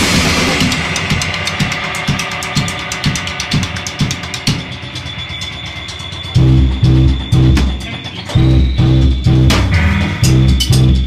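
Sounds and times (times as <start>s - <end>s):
drum kit playing a steady beat: 0.0s - 11.0s.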